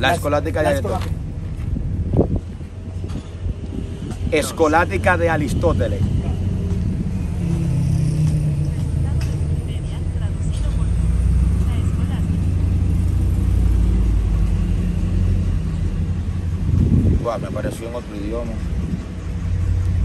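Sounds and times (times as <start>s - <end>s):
vehicle engine rumble: 0.0s - 20.0s.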